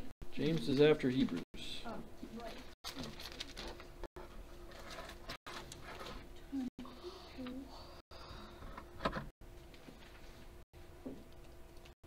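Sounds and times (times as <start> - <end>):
paper pages rustling and turning: 2.4 - 4.0, 4.6 - 6.3, 9.6 - 10.6.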